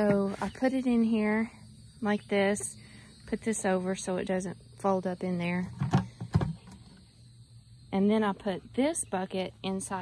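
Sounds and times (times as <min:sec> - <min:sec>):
plastic bucket lid knocks: 0:05.8 - 0:06.8.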